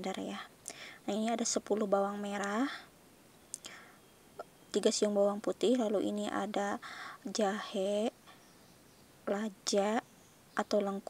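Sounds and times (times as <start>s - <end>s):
woman speaking: 0.0s - 2.9s, 4.7s - 8.3s, 9.3s - 10.0s, 10.6s - 11.0s
soft breath: 0.7s - 1.1s, 3.6s - 4.0s, 6.8s - 7.3s.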